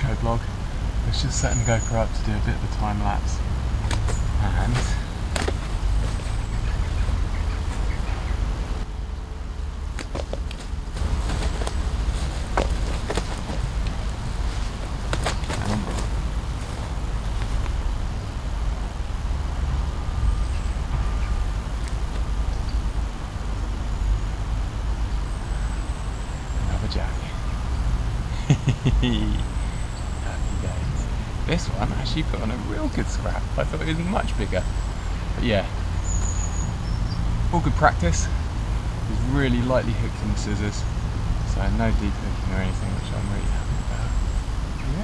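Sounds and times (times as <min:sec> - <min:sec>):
steady low rumble: 0:00.0 - 0:45.0
clicks and rustles of landing net: 0:15.1 - 0:16.2.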